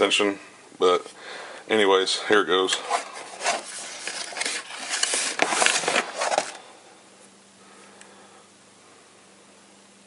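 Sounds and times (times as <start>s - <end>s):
cardboard box rubbing and scraping: 2.8s - 6.6s.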